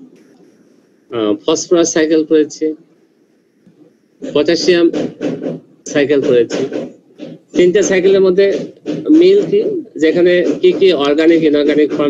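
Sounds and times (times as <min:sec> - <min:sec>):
person speaking: 0:03.6 - 0:05.3, 0:07.6 - 0:12.0.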